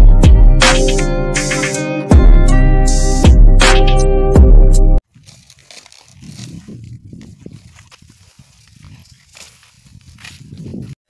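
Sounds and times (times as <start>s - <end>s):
stalks rustling: 5.0s - 11.0s
microphone handling noise: 6.1s - 11.0s
wind rumble on microphone: 6.1s - 11.0s.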